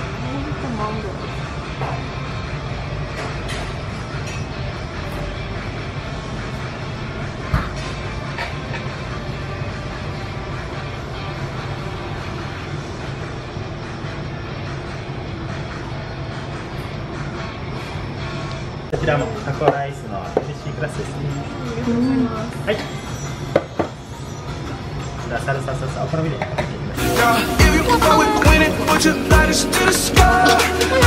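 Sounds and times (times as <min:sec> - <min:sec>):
restaurant room hum: 0:00.0 - 0:31.0.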